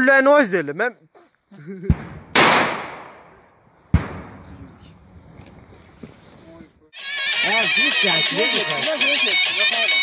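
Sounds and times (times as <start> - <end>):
rifle shot with echo: 1.9 - 4.6.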